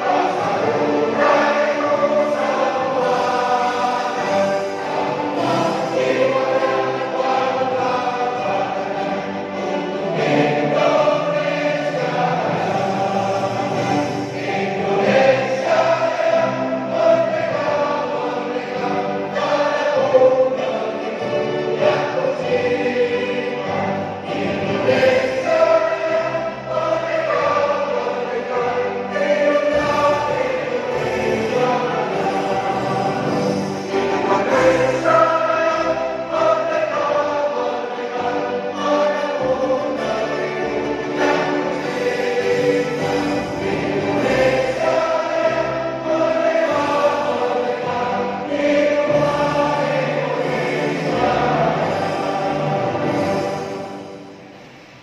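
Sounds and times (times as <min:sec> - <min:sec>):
choir singing: 0:00.0 - 0:55.0.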